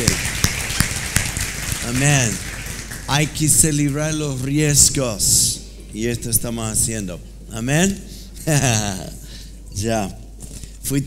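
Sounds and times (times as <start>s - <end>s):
congregation applauding: 0.0s - 4.9s.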